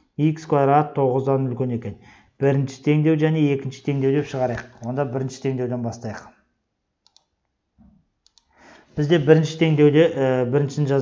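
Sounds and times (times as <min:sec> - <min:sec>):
faint quick clicks: 0:08.2 - 0:08.6.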